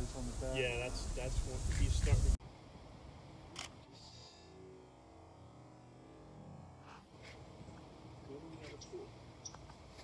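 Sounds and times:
camera shutter clicks: 3.5s - 3.8s.

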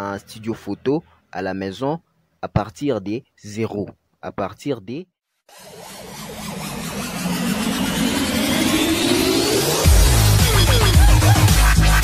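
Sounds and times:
car engine revving: 5.5s - 12.0s
electronic music: 5.5s - 12.0s.

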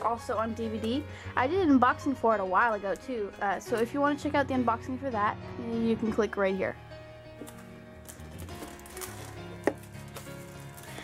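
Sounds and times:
soft background music: 0.0s - 11.0s
plastic shrink wrap crinkling: 7.4s - 11.0s.

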